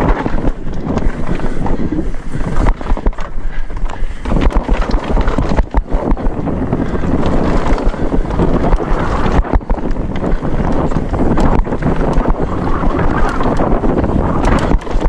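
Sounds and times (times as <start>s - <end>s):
bike clattering and knocking: 0.0s - 1.9s, 2.5s - 15.0s
bike tyres rolling on dirt: 0.0s - 15.0s
wind rumbling on microphone: 0.0s - 15.0s.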